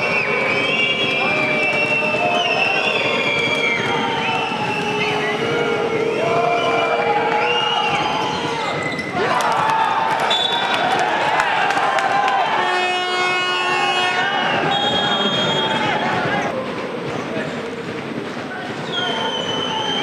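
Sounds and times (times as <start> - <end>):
crowd shouting and cheering: 0.0 - 20.0
short high whistle blast: 10.3 - 10.8.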